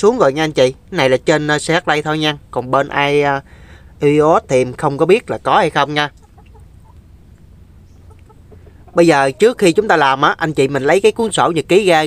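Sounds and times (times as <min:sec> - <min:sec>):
steady low hum: 0:00.0 - 0:11.8.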